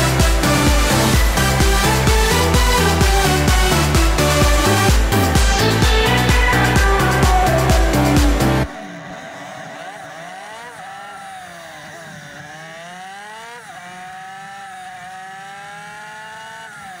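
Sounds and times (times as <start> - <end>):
motorcycle engine: 0.0 - 17.0.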